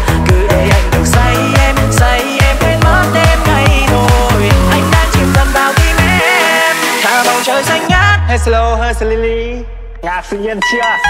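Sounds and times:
pounding bass beat: 0:00.0 - 0:11.0
synth melody: 0:00.4 - 0:07.9, 0:10.6 - 0:11.0.

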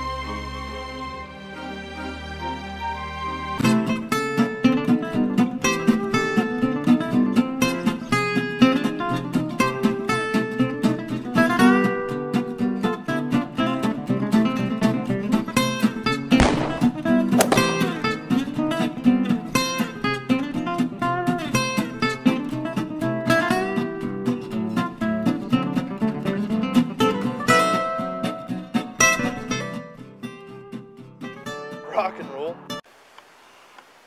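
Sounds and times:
fast plucked acoustic guitar: 0:03.6 - 0:16.2, 0:16.9 - 0:32.5.

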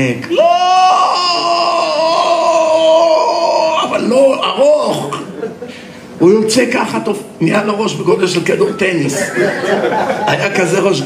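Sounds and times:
man wailing cry: 0:00.3 - 0:05.2.

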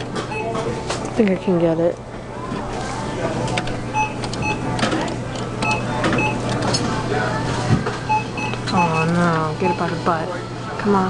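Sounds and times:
two-tone electronic beeps: 0:03.9 - 0:04.6, 0:05.6 - 0:06.4.

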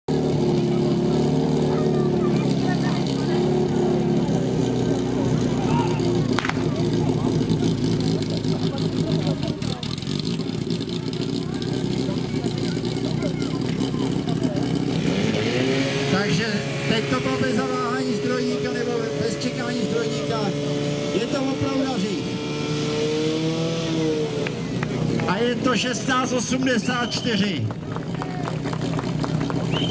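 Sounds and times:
fire pump engine running: 0:00.1 - 0:29.9
sharp crack: 0:06.3 - 0:07.1.

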